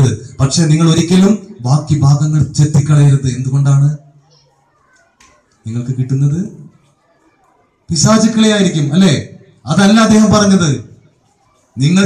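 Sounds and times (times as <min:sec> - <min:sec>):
man speaking over microphone: 0:00.0 - 0:04.1, 0:05.7 - 0:06.7, 0:07.9 - 0:11.0, 0:11.8 - 0:12.0
faint children's voices: 0:00.0 - 0:12.0.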